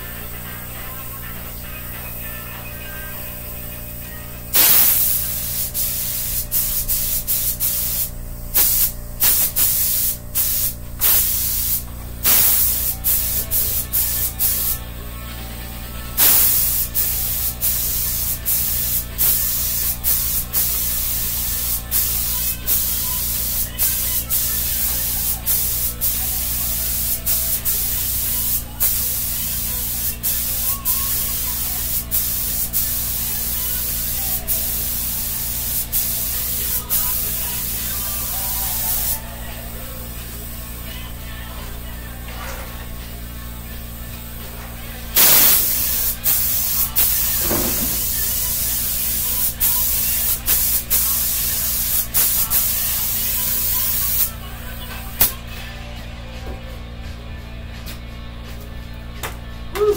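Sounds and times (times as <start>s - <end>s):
spray paint hissing: 4.5s - 14.8s, 16.2s - 41.0s, 45.1s - 55.4s.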